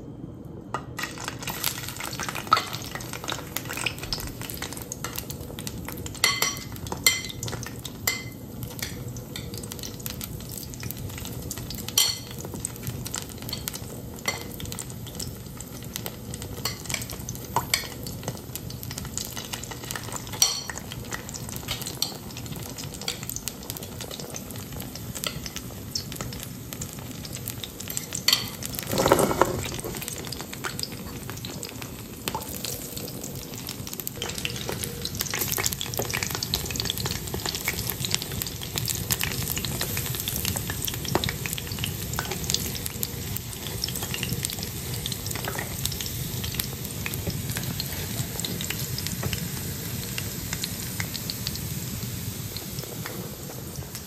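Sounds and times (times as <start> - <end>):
patties sizzling in hot oil: 1.0 - 54.0
spatula and fork scraping a pan: 28.3 - 30.0.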